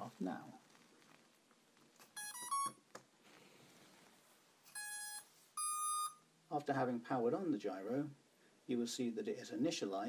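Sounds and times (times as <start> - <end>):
steady electronic beep: 4.8 - 6.2.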